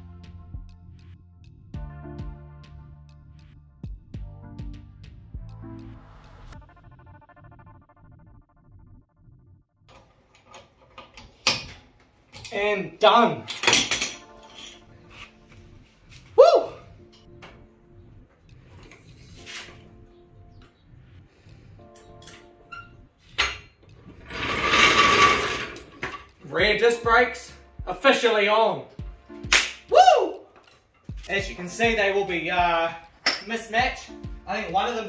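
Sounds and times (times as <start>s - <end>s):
background music: 0.0s - 8.6s, 9.9s - 35.0s.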